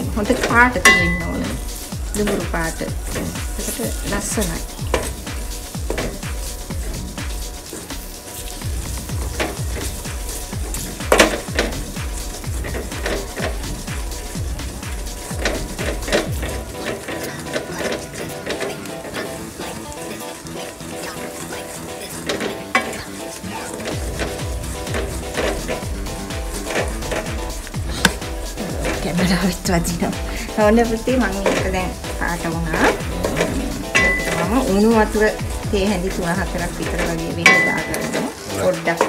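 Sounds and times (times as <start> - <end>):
background music: 0.0 - 39.0
sugar sizzling: 0.0 - 39.0
wooden spoon scraping a metal pot: 0.0 - 39.0.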